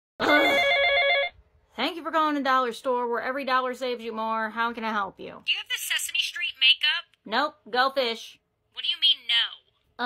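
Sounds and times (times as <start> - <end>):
telephone ringing: 0.2 - 1.4.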